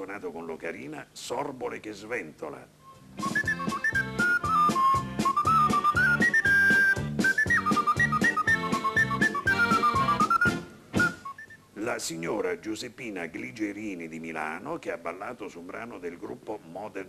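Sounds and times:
ocarina melody: 2.8s - 11.8s
band accompaniment with beat: 3.2s - 11.4s.

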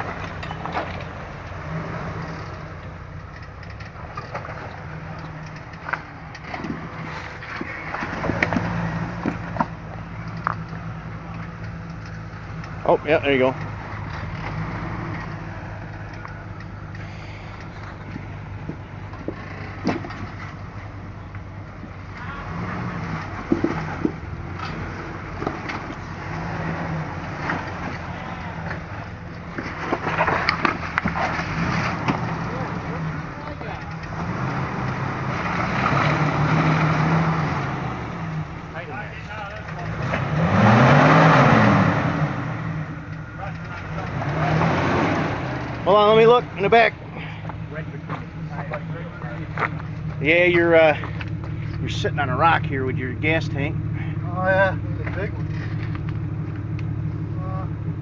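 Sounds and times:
tyres knocking and scraping rock: 0.0s - 20.7s, 22.2s - 37.2s
engine revving: 0.0s - 58.0s.

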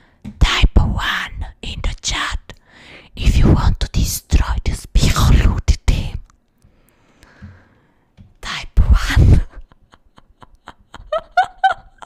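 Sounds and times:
woman whispering into microphone: 3.2s - 6.3s, 8.4s - 9.5s.

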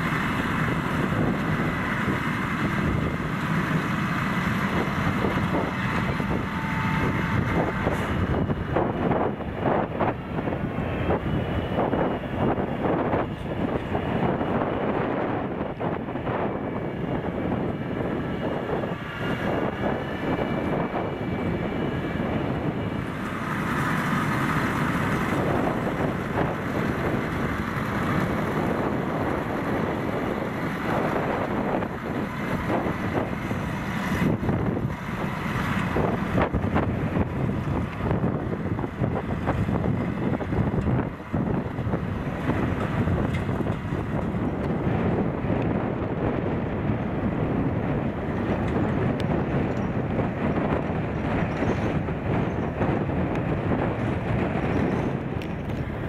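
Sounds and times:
high-pitched whine: 0.0s - 45.5s
tractor running: 0.0s - 56.0s.

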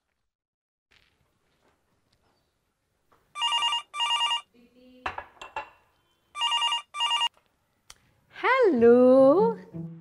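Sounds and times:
telephone ringing: 3.4s - 4.5s, 6.4s - 7.3s.

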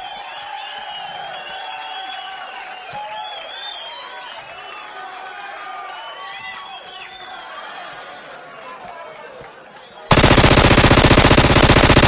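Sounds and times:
sampled machine-gun fire: 10.1s - 12.0s.

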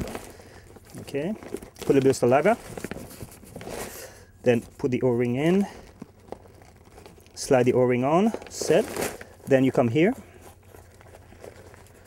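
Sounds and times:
fabric rustling and crinkling: 0.0s - 12.0s.

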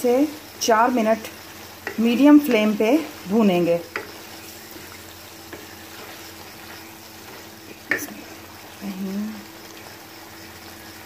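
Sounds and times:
vegetables frying in sauce: 0.0s - 11.0s
wooden spoon stirring in pan: 0.1s - 11.0s.

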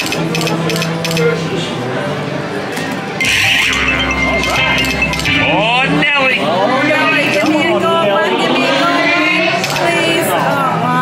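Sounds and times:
slot machine chiming tones: 3.2s - 7.6s
sweeping electronic tones: 3.2s - 7.6s.

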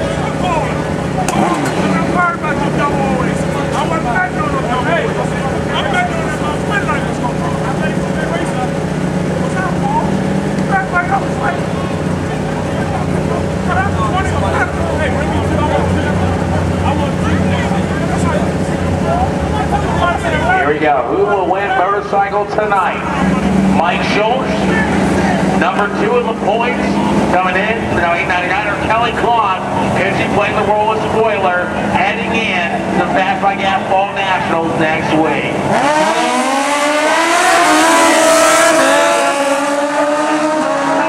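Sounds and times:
people talking: 0.0s - 35.6s, 38.5s - 39.5s
motorcycle engines idling: 0.0s - 41.0s.

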